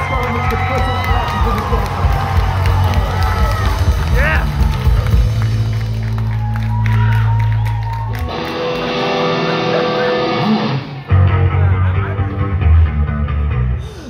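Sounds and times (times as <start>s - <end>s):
crowd cheering and shouting: 0.0s - 13.8s
rock band playing live: 0.0s - 14.0s.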